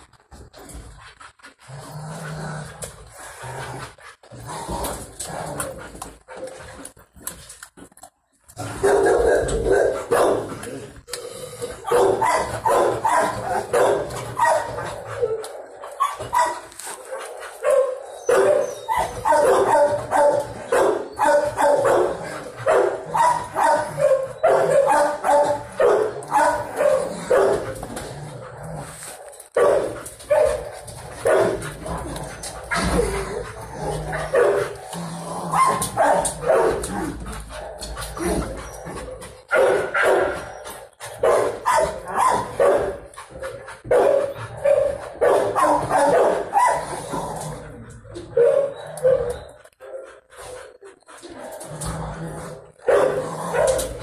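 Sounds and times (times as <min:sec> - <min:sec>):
dogs barking: 0:08.7 - 0:10.6, 0:11.8 - 0:27.8, 0:29.1 - 0:31.8, 0:32.4 - 0:34.8, 0:35.5 - 0:46.9, 0:48.2 - 0:50.6, 0:52.8 - 0:54.0.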